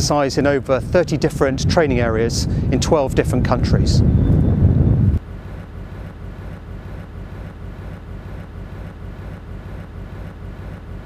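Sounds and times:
loud low outdoor rumble: 0:00.0 - 0:11.0.

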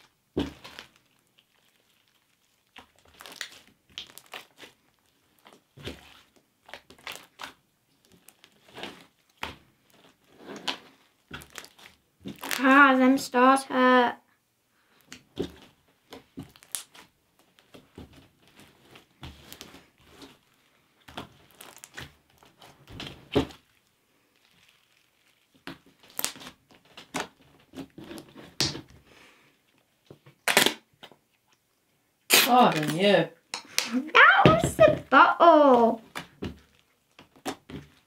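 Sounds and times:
slime being kneaded by hand: 0:00.0 - 0:13.6, 0:14.9 - 0:31.6, 0:32.2 - 0:38.0.

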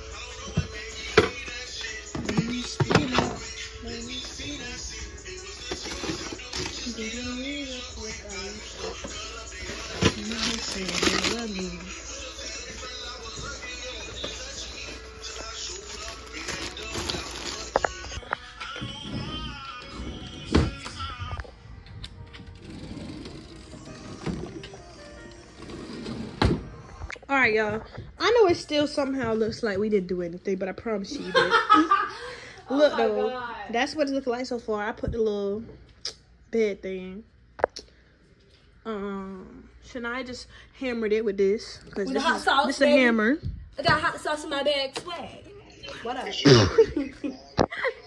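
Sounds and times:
background music: 0:00.0 - 0:35.2.

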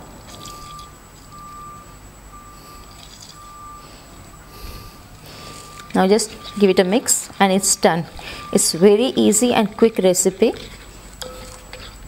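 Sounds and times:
high electronic beep: 0:00.5 - 0:04.5, 0:05.4 - 0:08.9.

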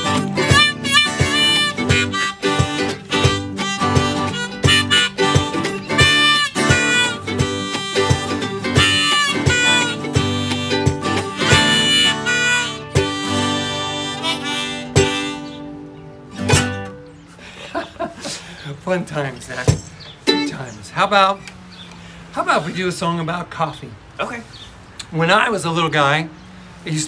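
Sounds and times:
strummed ukulele: 0:00.0 - 0:17.2, 0:19.7 - 0:20.8
harmonica: 0:00.0 - 0:17.4
acoustic guitar: 0:00.0 - 0:18.5.

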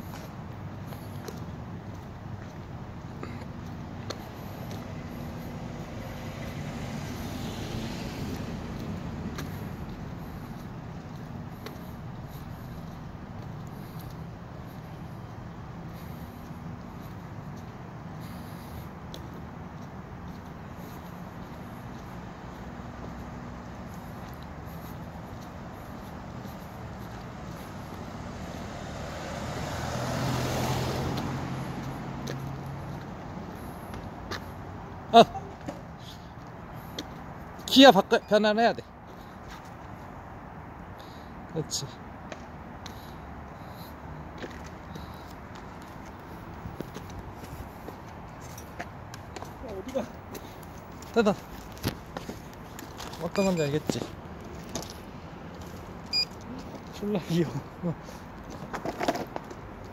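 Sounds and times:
car driving past: 0:04.9 - 0:09.8, 0:28.1 - 0:33.1.

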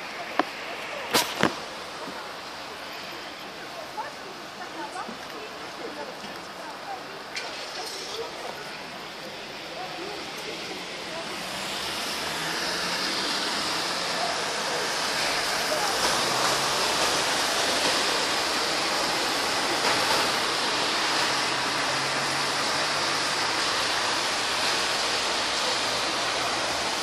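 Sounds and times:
hiss of wet snow falling: 0:00.1 - 0:27.0.

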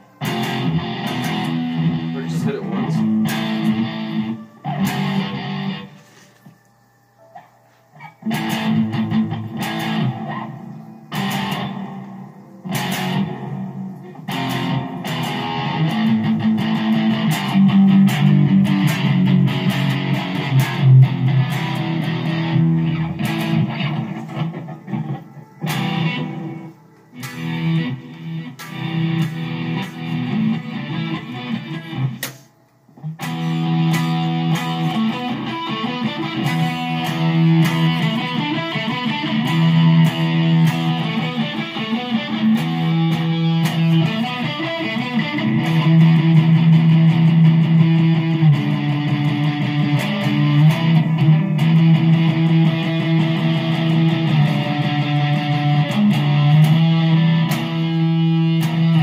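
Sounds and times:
electric guitar riffs: 0:00.0 - 0:06.3, 0:07.9 - 0:59.0.

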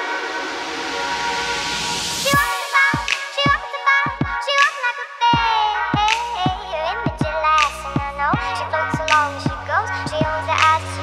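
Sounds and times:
hissing noise sweep: 0:00.0 - 0:03.4.

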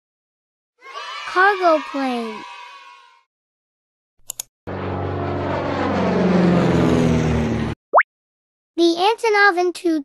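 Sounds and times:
airplane engine tones falling: 0:04.7 - 0:07.8.

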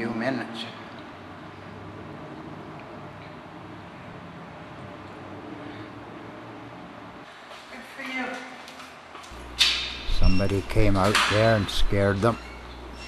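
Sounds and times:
faint hum and hiss: 0:00.0 - 0:13.0.

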